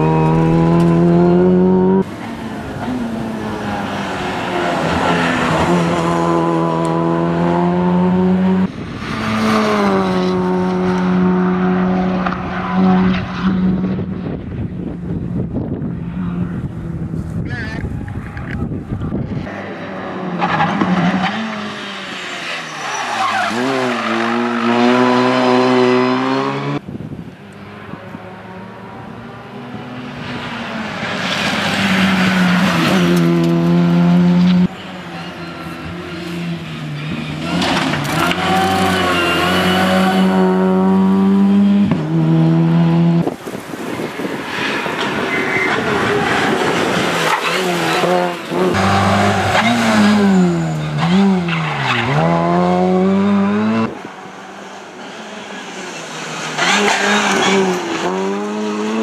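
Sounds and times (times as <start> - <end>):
rally car engine at full throttle: 0.0 - 59.0.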